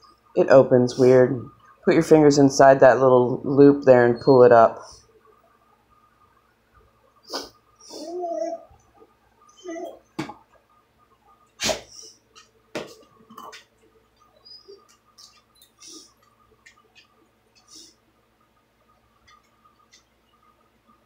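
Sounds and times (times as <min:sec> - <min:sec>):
dog whining: 0:07.3 - 0:08.8, 0:09.5 - 0:10.1.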